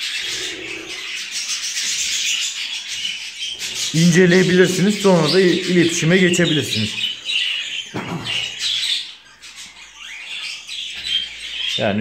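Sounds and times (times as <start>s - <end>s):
budgerigars twittering: 0.0s - 12.0s.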